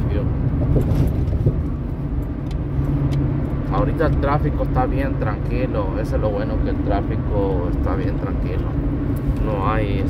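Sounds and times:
vehicle road and engine rumble: 0.0s - 10.0s.

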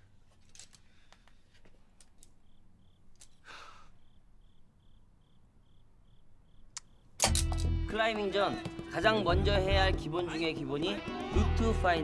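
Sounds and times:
crickets chirping: 0.0s - 9.0s.

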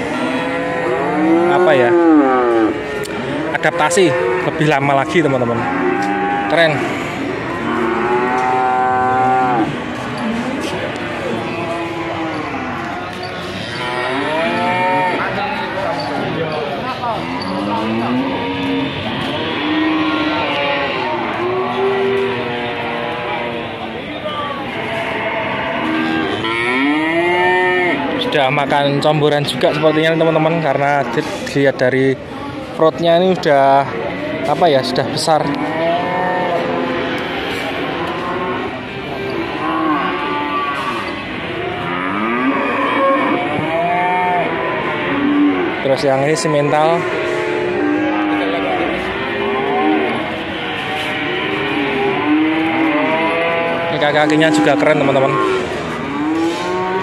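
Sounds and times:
cattle mooing: 0.0s - 24.0s, 24.6s - 28.4s, 33.9s - 57.0s
voices murmuring: 0.0s - 57.0s.

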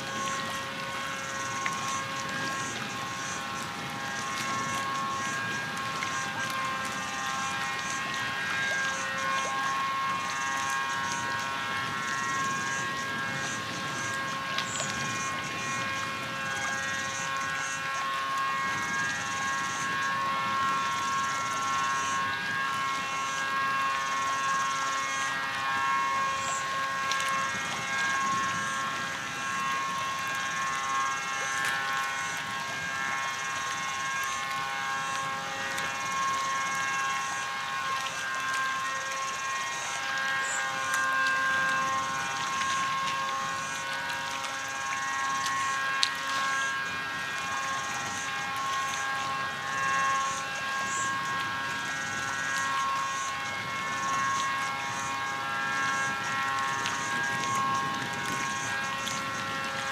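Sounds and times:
high buzzing: 0.0s - 59.9s
small waves lapping against concrete: 0.0s - 59.9s
steady droning hum: 0.0s - 59.9s.

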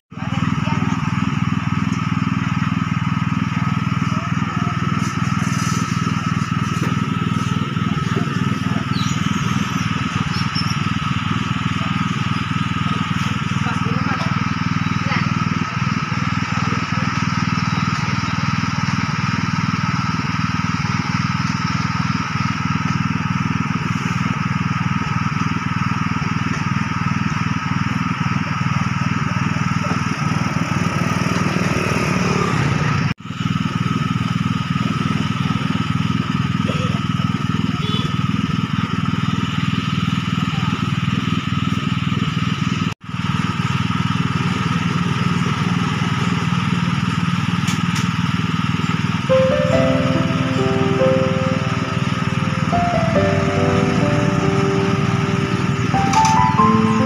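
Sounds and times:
small engine drone: 0.1s - 57.0s
constant higher hum: 49.2s - 57.0s.

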